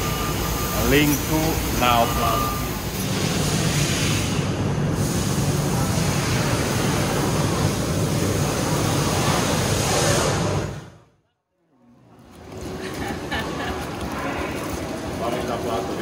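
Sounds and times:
production line machinery: 0.0s - 10.9s.

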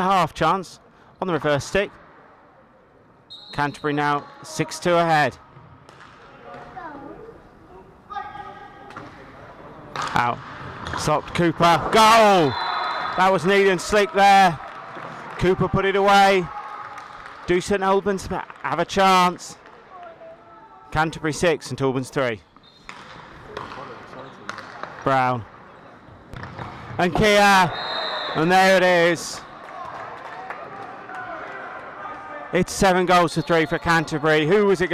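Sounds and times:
hockey sticks striking ball: 9.9s - 12.2s, 22.6s - 25.1s, 26.4s - 26.9s
players calling out: 11.6s - 17.2s, 22.6s - 34.9s.

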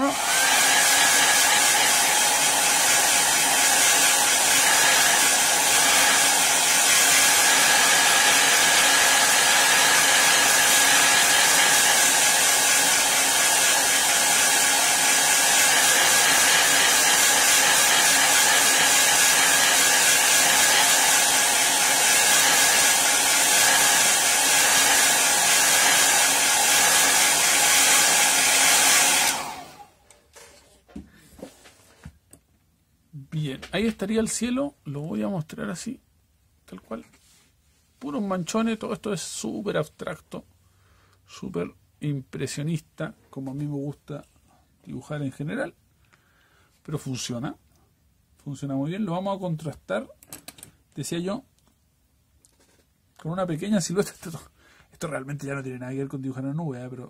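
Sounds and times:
heat gun blowing hot air: 0.0s - 30.0s.

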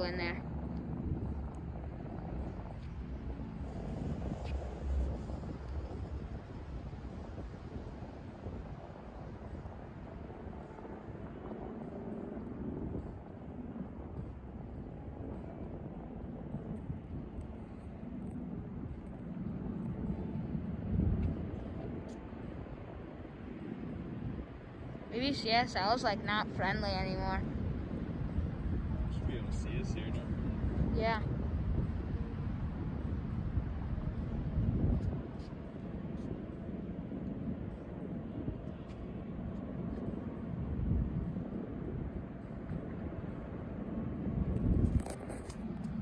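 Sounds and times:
low outdoor rumble: 0.0s - 46.0s
wind buffeting microphone: 0.0s - 46.0s.

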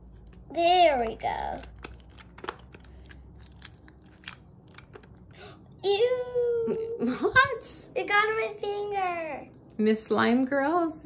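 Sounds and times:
plastic spoon stirring slime: 0.0s - 5.4s.

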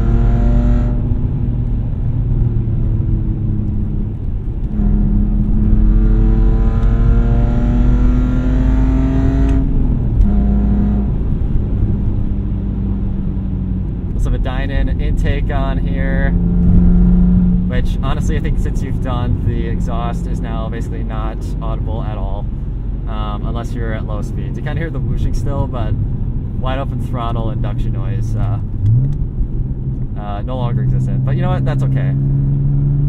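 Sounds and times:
car engine accelerating from cabin: 0.0s - 33.0s.

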